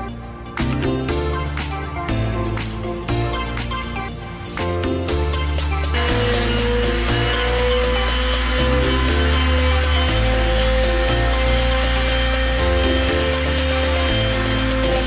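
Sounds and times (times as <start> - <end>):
electronic beat music: 0.0 - 15.0
orbital sander whining: 5.4 - 15.0.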